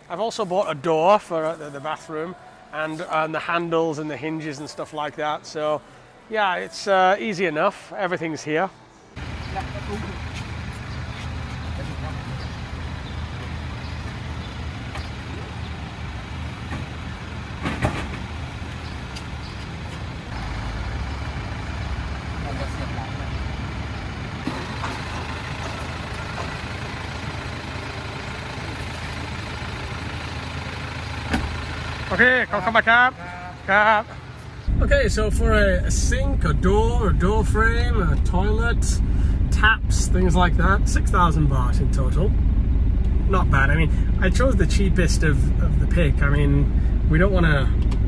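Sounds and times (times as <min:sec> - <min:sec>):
low mechanical rumble: 0:09.2 - 0:48.0.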